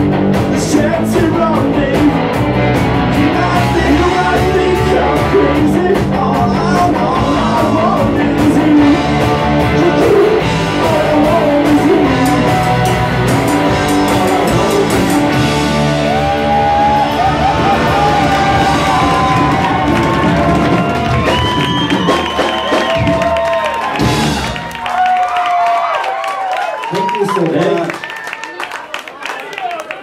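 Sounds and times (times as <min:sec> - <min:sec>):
bending guitar lead line: 0:00.0 - 0:23.3
live rock band playing: 0:00.0 - 0:25.0.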